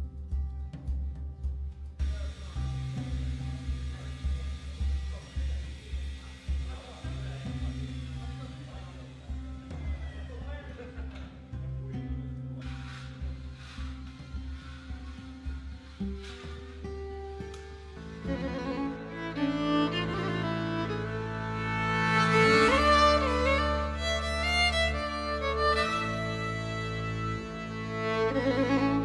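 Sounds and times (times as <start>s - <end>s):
music with bass line and beat: 0.0s - 29.0s.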